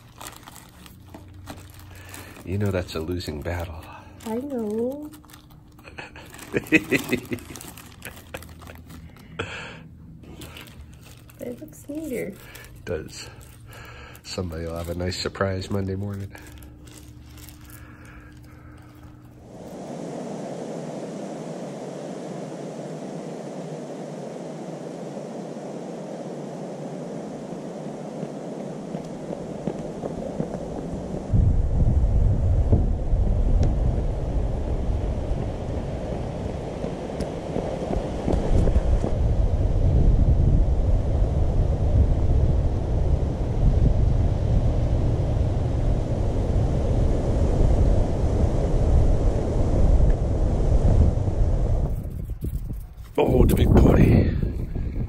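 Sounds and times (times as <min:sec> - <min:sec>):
wind buffeting microphone: 0:18.0 - 0:55.0.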